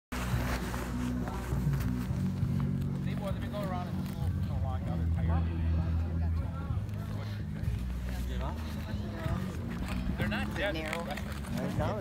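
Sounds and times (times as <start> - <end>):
people talking: 3.0 - 12.0.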